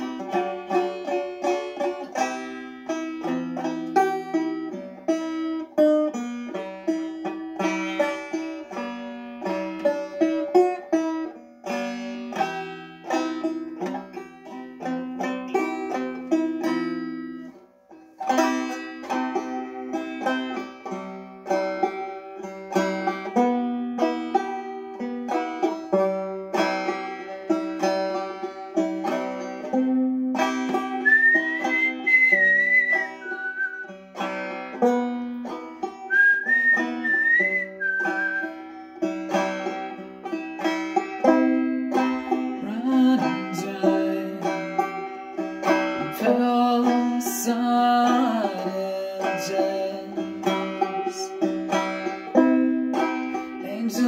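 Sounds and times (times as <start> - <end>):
banjo picking: 0.0 - 54.0
whistled melody: 30.9 - 34.1, 36.0 - 38.8.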